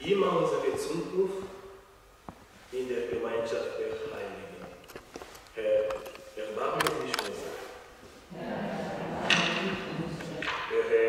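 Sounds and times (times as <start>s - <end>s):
man speaking in reverberant church: 0.0s - 1.9s, 2.7s - 4.8s, 5.5s - 7.9s, 10.3s - 11.0s.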